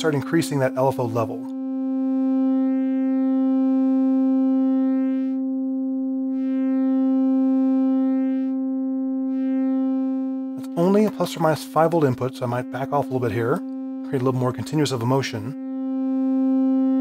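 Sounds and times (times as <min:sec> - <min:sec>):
sustained distorted synthesizer note: 0:00.0 - 0:17.0.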